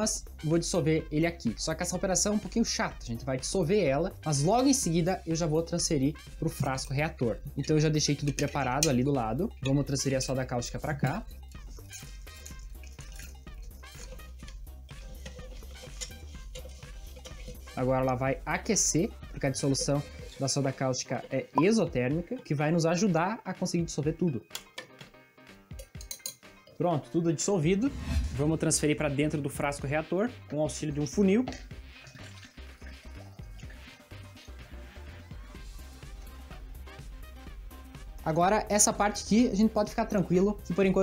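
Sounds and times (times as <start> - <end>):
background music with low beat: 0.0 - 41.0
music with repeating bass beat: 3.9 - 20.6, 34.6 - 38.3
metal spoon stirring in jar: 8.0 - 21.6, 25.7 - 26.7
liquid trickling into bottle: 11.0 - 17.8, 19.3 - 21.8, 31.5 - 34.7.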